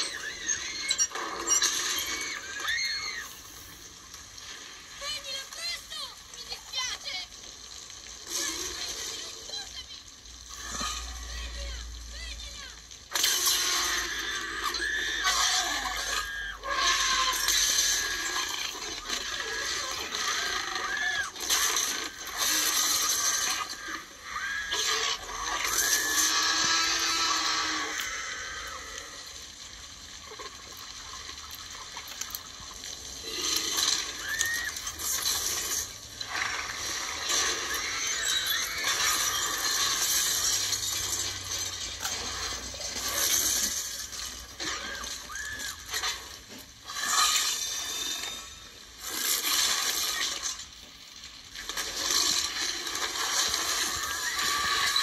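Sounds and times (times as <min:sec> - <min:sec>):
high sliding cries: 0:00.0 - 0:03.9, 0:13.2 - 0:29.4, 0:33.3 - 0:41.4, 0:52.1 - 0:55.0
rain noise: 0:00.0 - 0:55.0.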